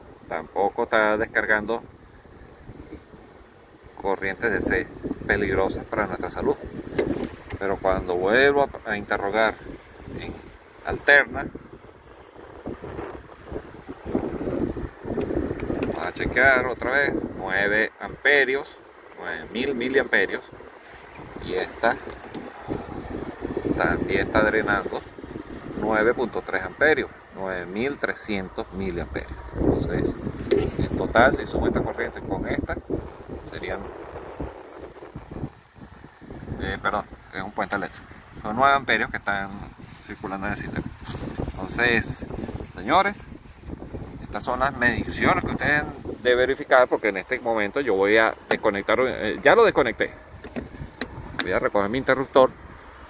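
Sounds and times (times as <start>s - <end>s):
wind buffeting microphone: 0.0s - 53.0s
soft thumps: 50.4s - 51.2s.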